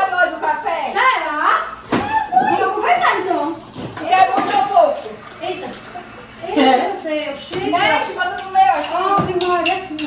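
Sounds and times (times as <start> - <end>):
people talking: 0.0 - 10.0
liquid pouring into a cup: 4.6 - 6.9.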